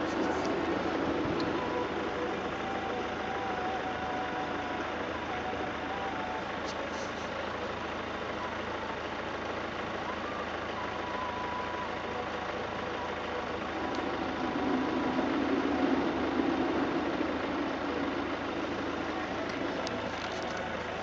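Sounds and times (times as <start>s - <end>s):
background hum and hiss: 0.0s - 21.0s
faint wavering tones: 0.0s - 21.0s.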